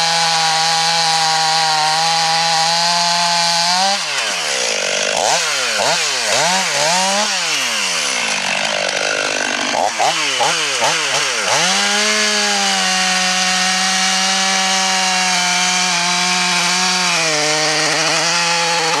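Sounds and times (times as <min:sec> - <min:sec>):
chainsaw revving and cutting wood: 0:00.0 - 0:19.0.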